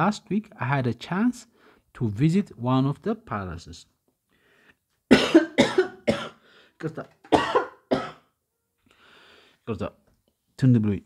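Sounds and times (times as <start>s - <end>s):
person coughing: 5.1s - 6.4s, 7.3s - 8.3s.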